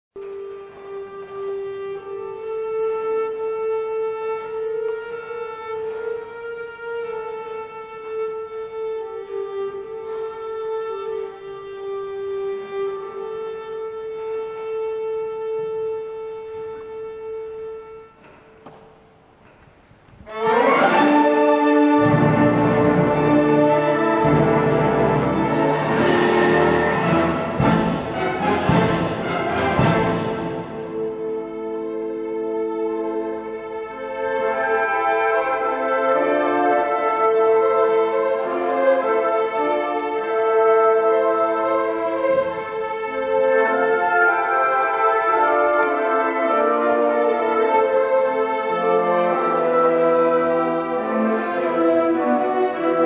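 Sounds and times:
low strings: 0:00.2 - 0:35.8
orchestra sustained chords: 0:20.2 - 0:53.0.

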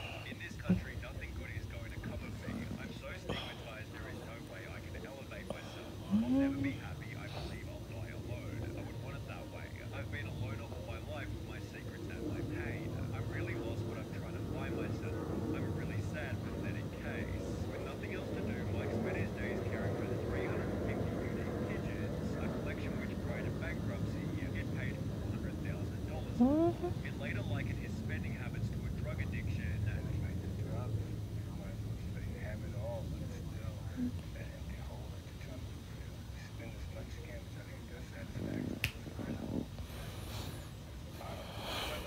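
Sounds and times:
muffled speech from phone: 0:00.0 - 0:42.0
steady low hum: 0:00.0 - 0:42.0.

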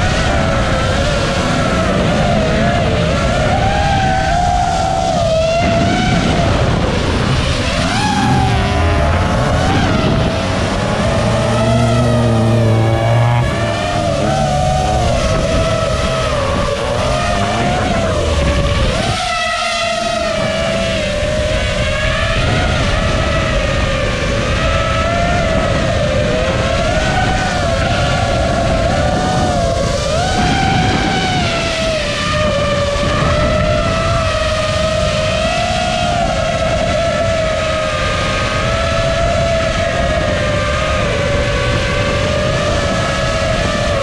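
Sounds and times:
drone motors whining: 0:00.0 - 0:44.0
low hum: 0:05.5 - 0:24.4.

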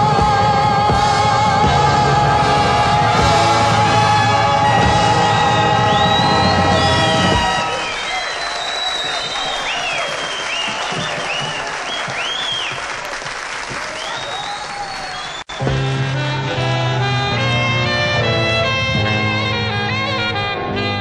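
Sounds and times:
live band closing chord: 0:00.9 - 0:08.0, 0:15.5 - 0:21.0
audience whistling: 0:02.7 - 0:16.0
audience applause: 0:03.3 - 0:15.7.

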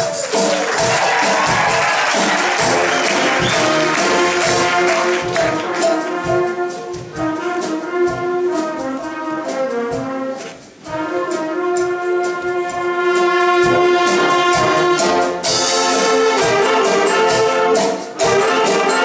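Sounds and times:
brass and wind ensemble: 0:00.0 - 0:19.0
percussion strokes: 0:00.0 - 0:19.0.

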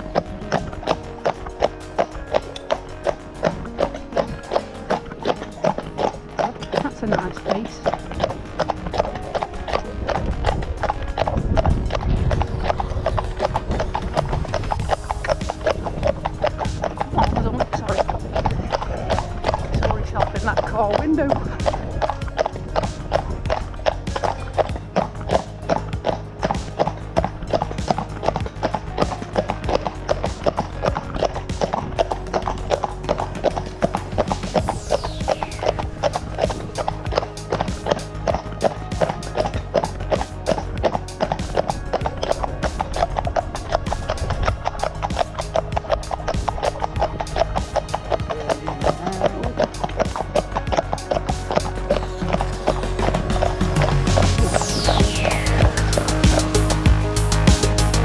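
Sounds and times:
background music: 0:00.0 - 0:58.0
hooves clip-clopping on road: 0:00.0 - 0:58.0.

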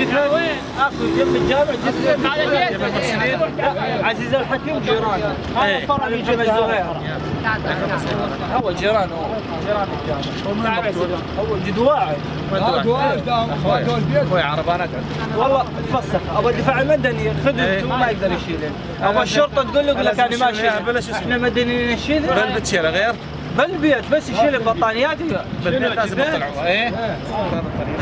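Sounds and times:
men talking over one another: 0:00.0 - 0:28.0
vehicle engine running: 0:00.0 - 0:28.0.

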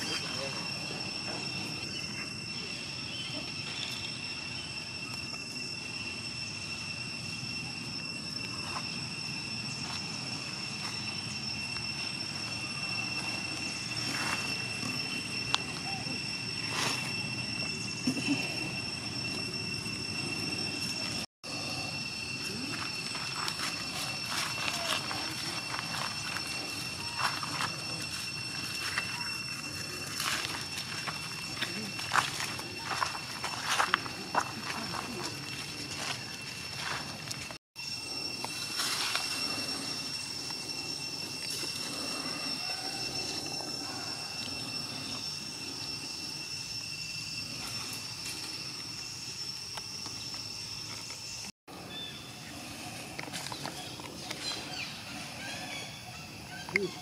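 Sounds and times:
high insect drone: 0:00.0 - 0:57.0.

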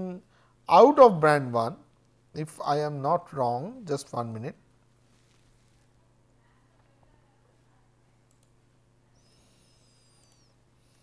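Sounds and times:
faint computer mouse clicks: 0:08.3 - 0:08.6, 0:10.0 - 0:10.6.

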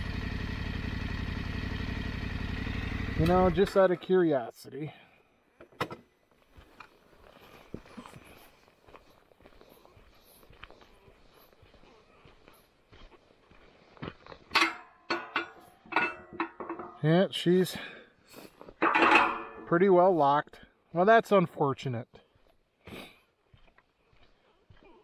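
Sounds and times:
footsteps on gravel: 0:06.3 - 0:14.6, 0:22.3 - 0:25.0
metal gate latch clattering: 0:14.6 - 0:17.0, 0:18.8 - 0:19.7.

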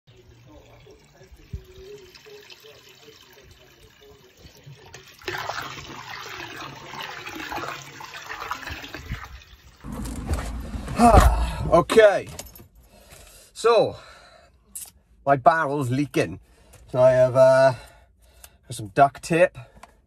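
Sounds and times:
hose water splashing into barrel: 0:00.1 - 0:10.4.

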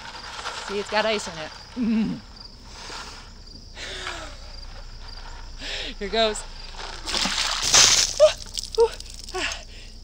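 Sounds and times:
water splashing over person: 0:07.0 - 0:09.4.

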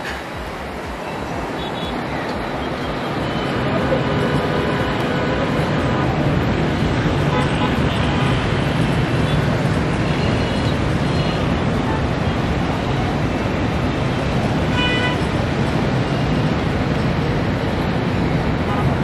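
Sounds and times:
dense road traffic: 0:00.0 - 0:19.0.

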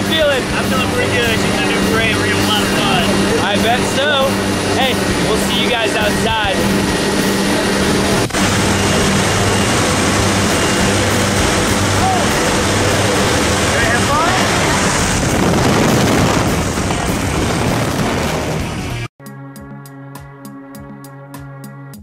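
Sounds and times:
plane engines droning: 0:00.0 - 0:19.1
rushing air: 0:00.0 - 0:19.1
music with drum kit: 0:18.0 - 0:22.0.

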